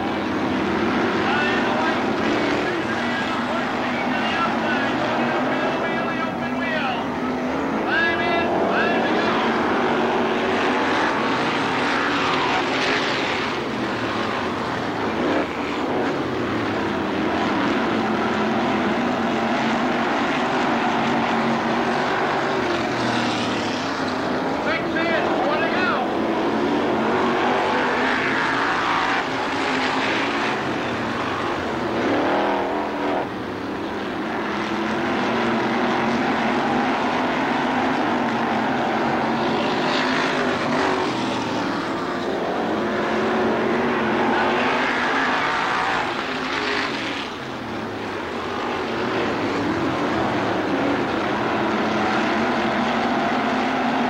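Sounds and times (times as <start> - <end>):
race car engines passing by: 0.0 - 54.0.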